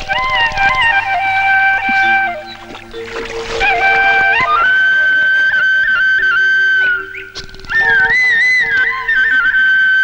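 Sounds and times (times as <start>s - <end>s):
held accompanying notes: 0.0s - 10.0s
solo flute melody: 0.0s - 10.0s.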